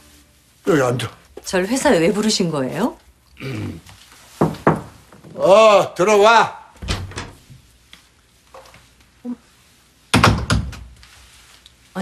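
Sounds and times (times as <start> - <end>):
door shutting with heavy thuds: 6.8 - 7.4.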